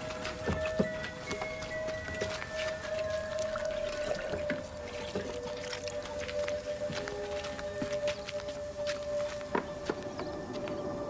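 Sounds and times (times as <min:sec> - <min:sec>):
water splashes and drips: 0:00.0 - 0:10.1
soft film score music: 0:00.0 - 0:11.0
water poured from pitcher: 0:02.2 - 0:06.4.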